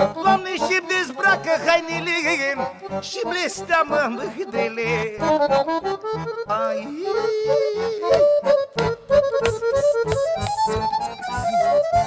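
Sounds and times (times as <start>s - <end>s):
accordion: 0.0s - 12.0s
steady beat: 7.3s - 12.0s.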